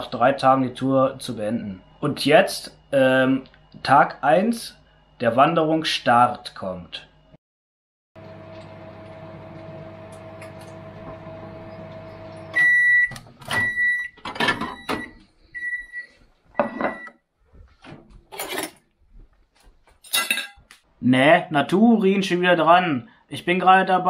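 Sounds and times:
microwave oven humming: 0.0 - 6.2, 8.2 - 15.9.

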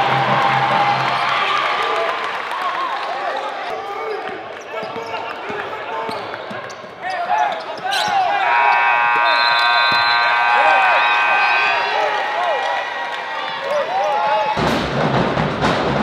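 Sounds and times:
sneakers squeaking on court: 4.1 - 8.4.

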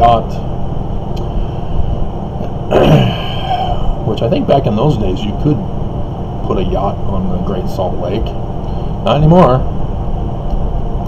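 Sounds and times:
low background rumble: 0.0 - 11.0
man clearing throat: 2.7 - 4.0.

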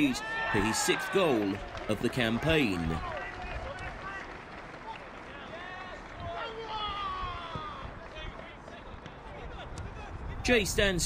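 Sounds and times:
open-air field noise: 0.0 - 11.0
distant players shouting: 4.9 - 10.2.

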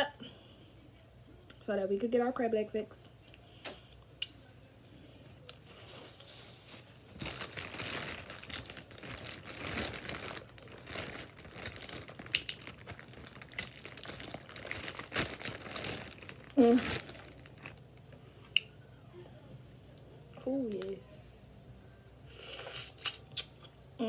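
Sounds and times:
crab shells cracking: 8.2 - 17.6.

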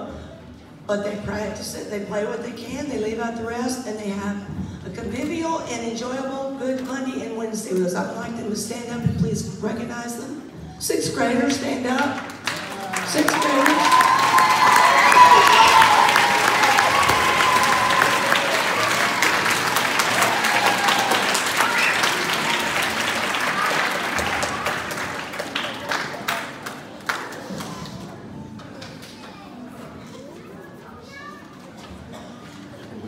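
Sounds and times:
audience applauding: 12.2 - 27.8.

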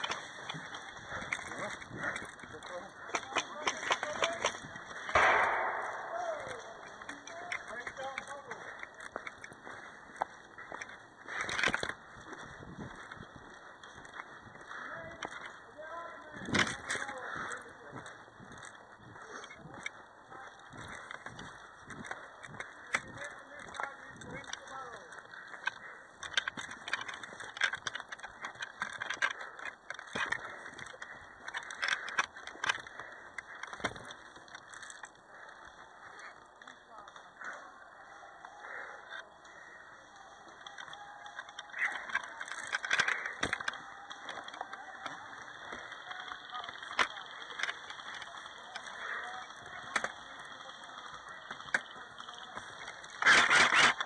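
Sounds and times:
faint voices: 0.0 - 54.0
small scuffs and clicks: 0.0 - 54.0.

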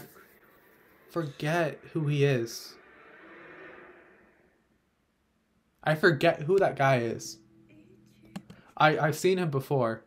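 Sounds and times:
very faint soundtrack music: 0.0 - 10.0.

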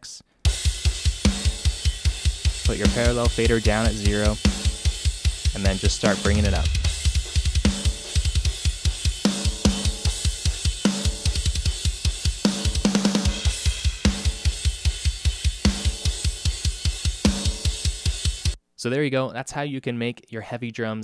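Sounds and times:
double-kick bass drum: 0.5 - 18.5.

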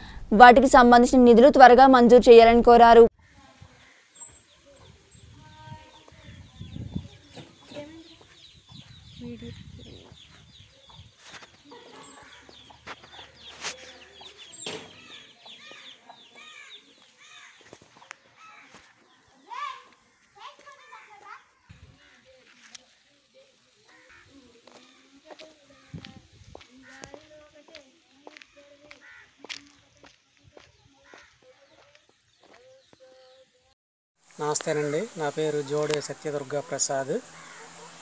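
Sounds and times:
birds calling: 3.2 - 33.6, 34.4 - 38.0.

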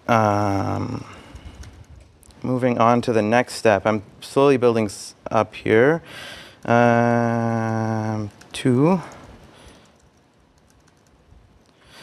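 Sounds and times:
laptop keyboard typing: 6.4 - 11.8.

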